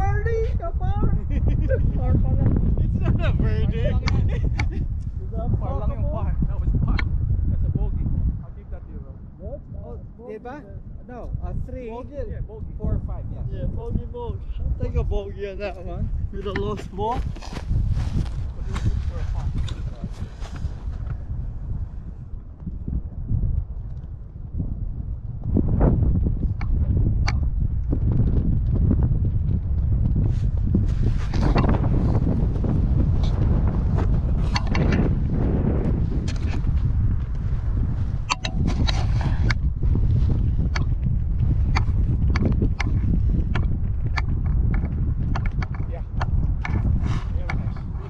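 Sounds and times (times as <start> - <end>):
wind buffeting microphone: 0.0 - 48.0
sharp clicks and ticks: 6.9 - 7.2, 16.3 - 17.1, 34.4 - 35.1, 38.2 - 39.7, 40.6 - 48.0.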